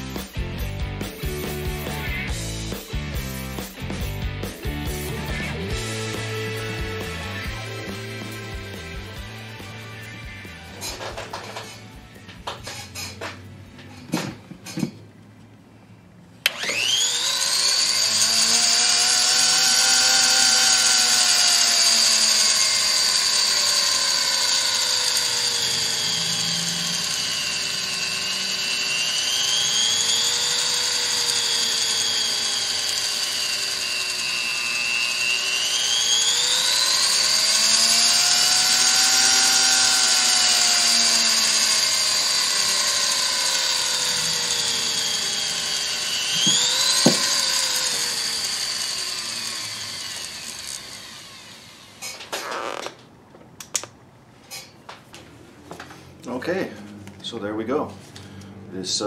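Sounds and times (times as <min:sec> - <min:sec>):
rotary tool motor whining: 0:16.4 - 0:53.0.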